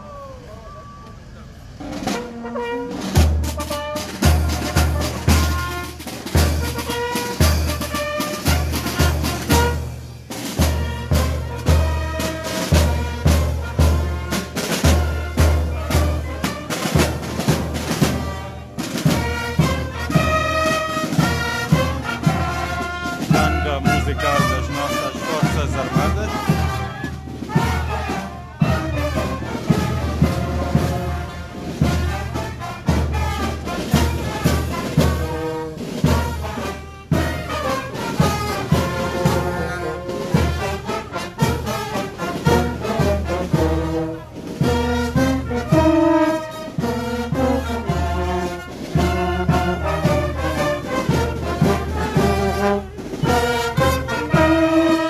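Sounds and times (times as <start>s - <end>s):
brass band playing: 0.0s - 55.0s
bass and snare drums beat: 1.8s - 55.0s.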